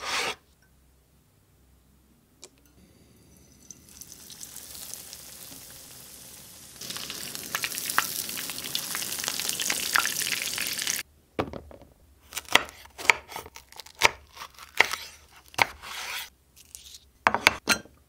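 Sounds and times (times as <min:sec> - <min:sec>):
chicken sizzling in hot oil: 0:02.8 - 0:11.0
knife slicing on wooden board: 0:12.4 - 0:17.6.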